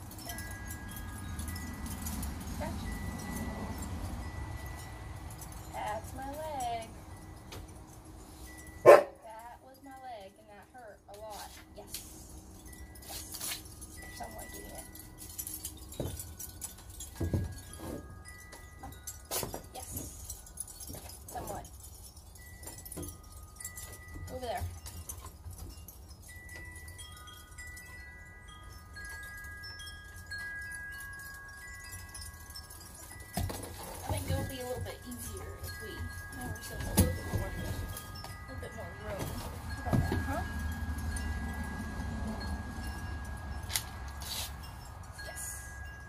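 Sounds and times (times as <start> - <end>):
wind chimes ringing: 0.0 - 46.0.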